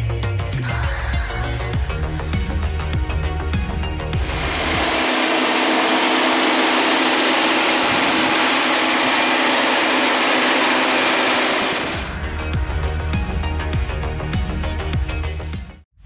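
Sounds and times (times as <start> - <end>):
car engine idling: 4.2 - 12.4.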